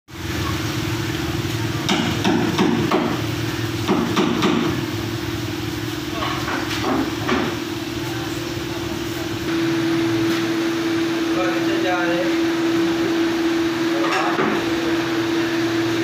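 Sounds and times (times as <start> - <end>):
electric fan motor hum: 0.1 - 16.0.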